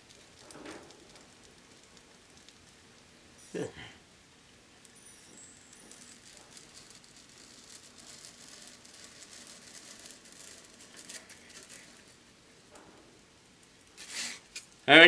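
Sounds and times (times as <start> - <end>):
hot wire cutting foam crackling: 4.8 - 12.3, 14.0 - 15.0.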